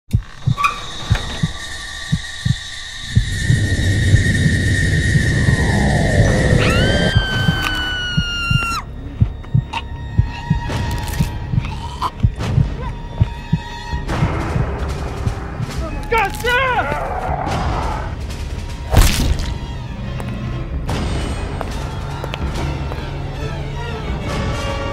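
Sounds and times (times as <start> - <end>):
horror music score: 0.1 - 24.9.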